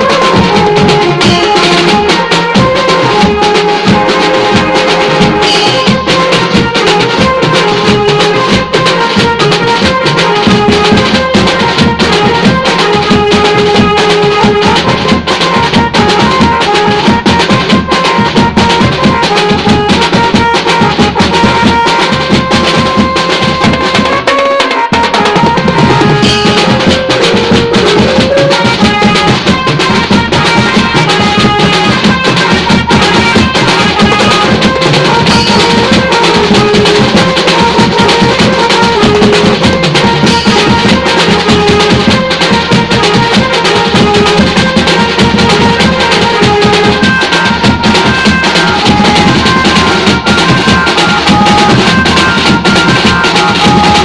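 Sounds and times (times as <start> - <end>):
percussion rhythm: 0.0 - 54.0
steel pans playing melody: 0.0 - 54.0.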